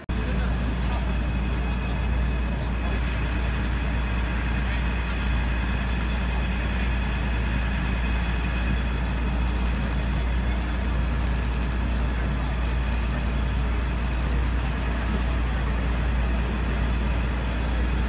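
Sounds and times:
crowd talking: 0.0 - 18.0
loud engine rumble: 0.0 - 18.0.

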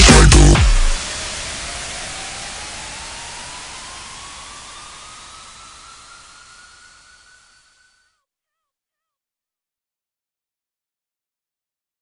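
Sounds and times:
synthesized white-noise wash: 0.0 - 8.0
faint tone gliding upward: 0.6 - 8.0.

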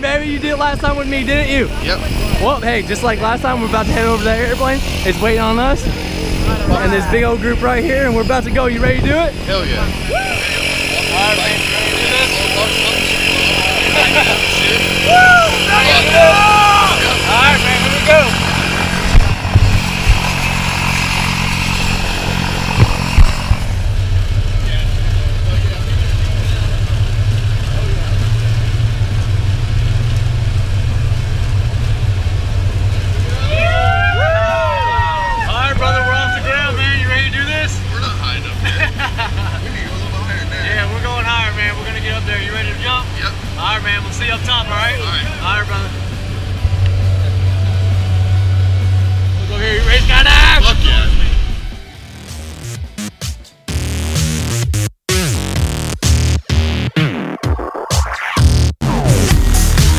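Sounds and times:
propeller plane engine drone: 0.0 - 53.8
voices shouting: 9.8 - 19.0, 33.2 - 37.1
engine knocks: 17.1 - 33.3.

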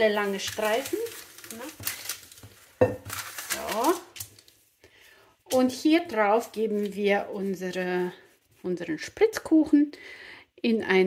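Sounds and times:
baking paper rustling: 0.0 - 9.2.

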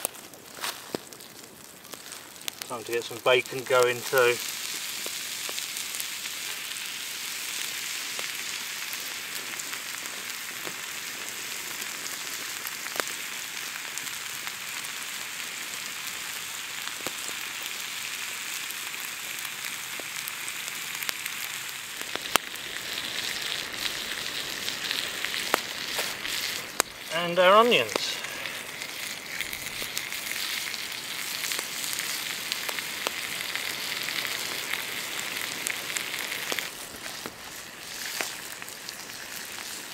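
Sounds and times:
meat sizzling on hot stone: 0.0 - 39.9
sharp pops: 22.0 - 30.7.

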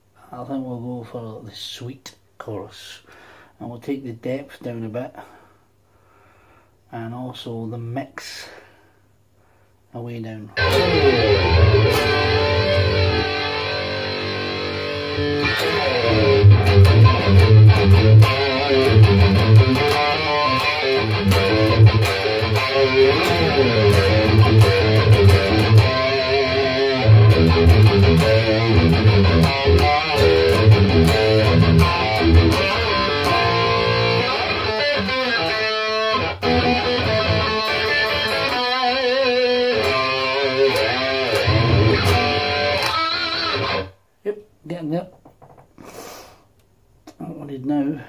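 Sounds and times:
distorted electric guitar riff: 10.6 - 44.0
breath through the nose: 45.8 - 46.5.

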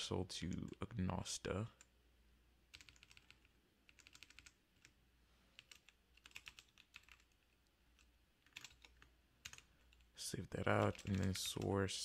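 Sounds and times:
faint keyboard typing: 0.4 - 2.0, 2.7 - 12.0.

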